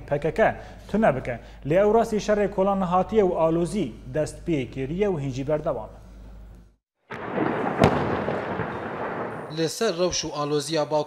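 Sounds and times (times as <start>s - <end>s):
sharp bang: 7.1s - 9.5s.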